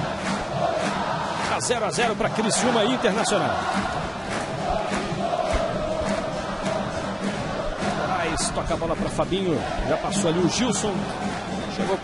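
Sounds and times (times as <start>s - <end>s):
stadium crowd chanting and singing: 0.0s - 12.0s.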